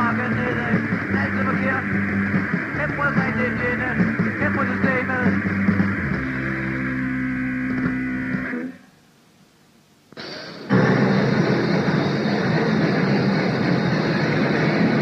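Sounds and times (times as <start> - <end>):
tape hiss: 0.0 - 15.0.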